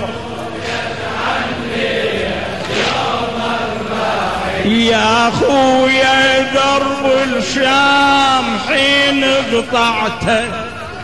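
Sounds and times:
crowd of men chanting: 0:00.0 - 0:10.9
man singing: 0:04.6 - 0:11.0.

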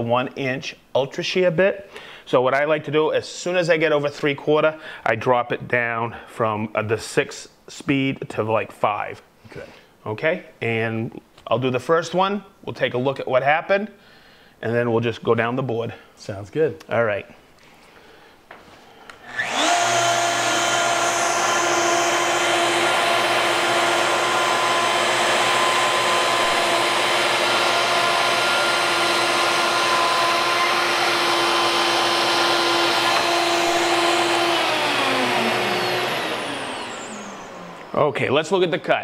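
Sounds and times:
router spinning down: 0:19.2 - 0:38.1
router high whine: 0:19.2 - 0:38.6.

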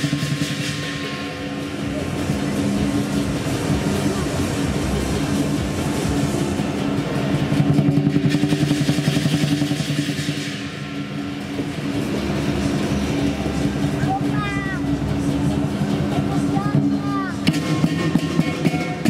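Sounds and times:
cymbals: 0:00.0 - 0:19.0
drum roll: 0:00.0 - 0:19.0
gong: 0:00.0 - 0:19.0.

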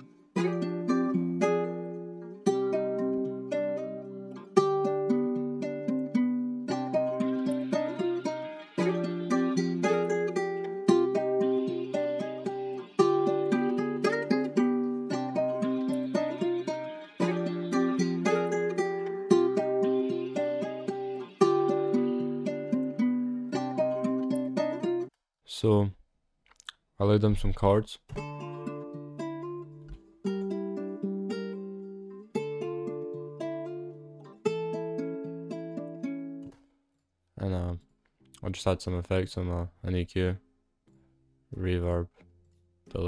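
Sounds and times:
plucked guitar melody with reverb: 0:00.0 - 0:25.1, 0:28.2 - 0:36.6.

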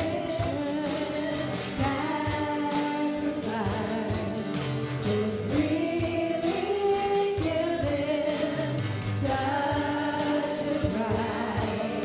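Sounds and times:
women singing together: 0:00.0 - 0:12.0
worship band playing: 0:00.0 - 0:12.0.

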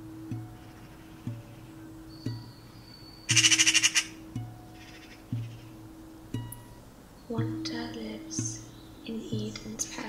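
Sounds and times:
harsh pulsing bird squawk: 0:03.3 - 0:04.2, 0:04.8 - 0:05.8.

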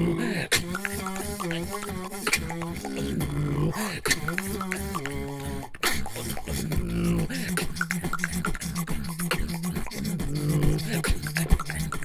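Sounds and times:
beatboxing percussion: 0:00.0 - 0:12.0
hummed melody: 0:00.6 - 0:03.2.

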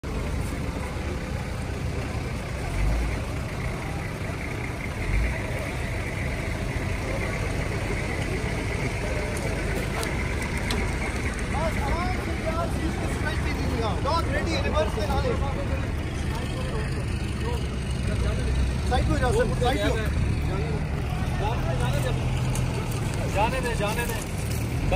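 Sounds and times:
people's voices: 0:00.0 - 0:24.9
vehicle engine idling: 0:00.0 - 0:24.9.

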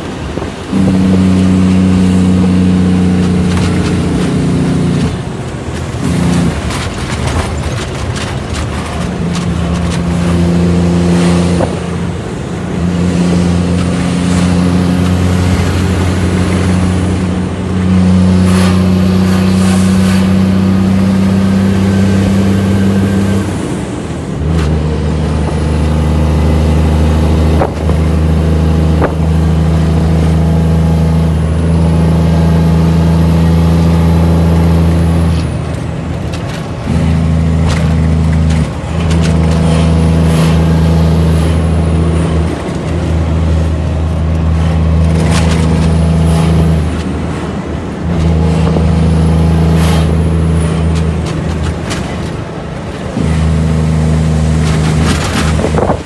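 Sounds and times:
diesel truck engine driving: 0:00.0 - 0:56.0.

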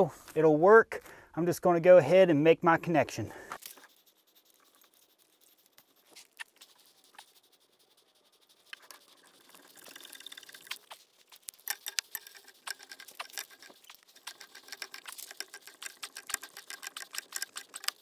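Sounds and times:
metallic clicks and scrapes of pipe wrench: 0:08.7 - 0:18.0.

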